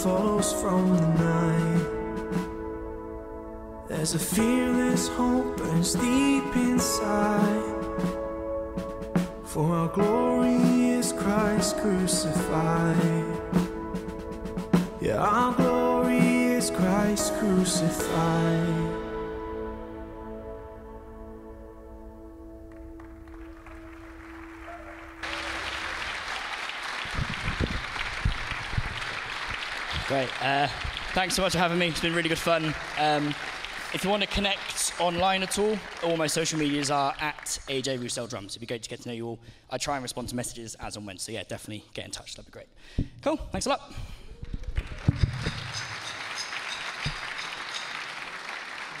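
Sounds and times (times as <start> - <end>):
backing track held chord: 0.0 - 26.1
audience applause: 23.0 - 38.1, 44.8 - 49.0.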